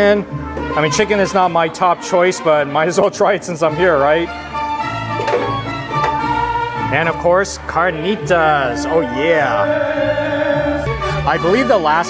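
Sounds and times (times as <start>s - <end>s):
mariachi band playing: 0.0s - 12.0s
violins holding long notes: 0.6s - 12.0s.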